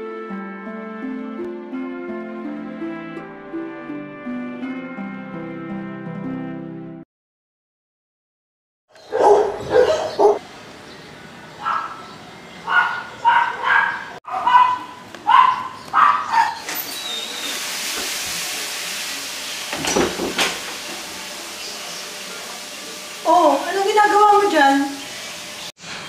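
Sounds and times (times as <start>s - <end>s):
dog barking: 9.0s - 10.4s, 11.6s - 16.7s
steady hiss: 16.9s - 25.7s.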